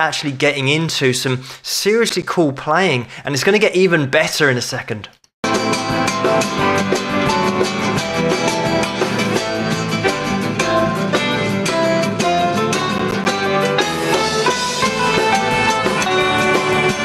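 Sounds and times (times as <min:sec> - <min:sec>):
band with drums: 0:05.4 - 0:17.0
nylon-string guitar played fast: 0:05.4 - 0:17.0.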